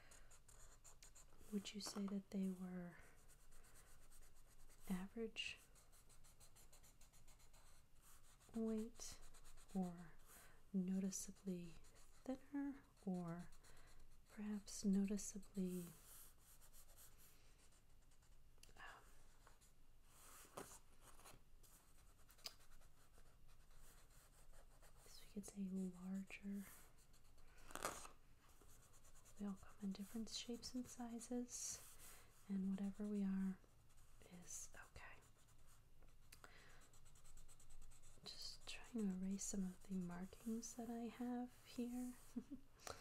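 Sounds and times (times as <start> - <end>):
pencil sketching on paper: 0.0 - 10.4, 11.0 - 18.3, 19.4 - 27.4, 28.6 - 33.2, 36.8 - 42.4.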